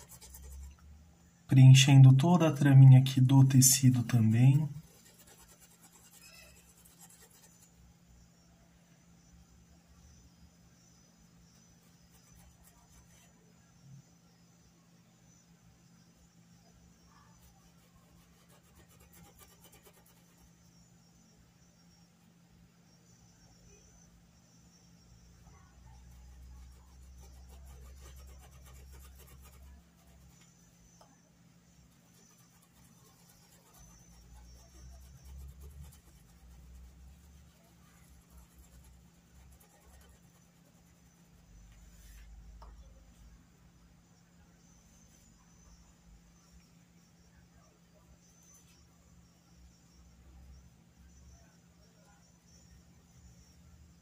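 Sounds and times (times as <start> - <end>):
paintbrush scrubbing cloth: 0.0 - 0.7, 3.5 - 7.7, 17.4 - 20.4, 26.0 - 30.5, 31.9 - 42.3.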